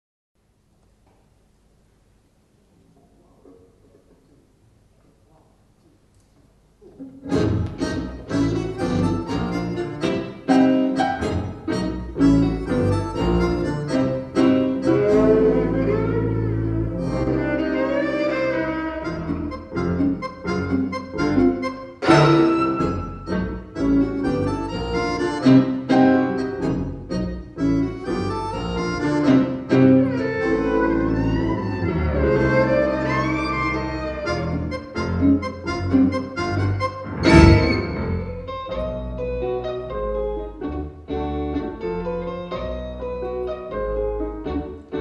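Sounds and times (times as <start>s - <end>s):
instrumental quintet playing tango: 6.9s - 45.0s.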